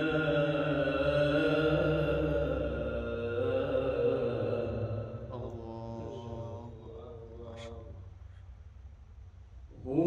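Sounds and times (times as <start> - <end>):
man chanting melodically: 0.0 - 8.1, 9.7 - 10.0.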